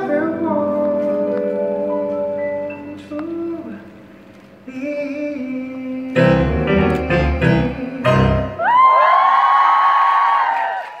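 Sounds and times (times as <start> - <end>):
audience screaming and cheering: 8.4 - 11.0.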